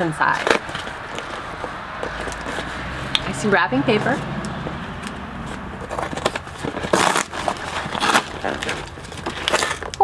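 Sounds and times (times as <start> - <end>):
cardboard box being torn open: 0.3 - 1.3, 5.5 - 10.0
low rumble: 0.6 - 8.9.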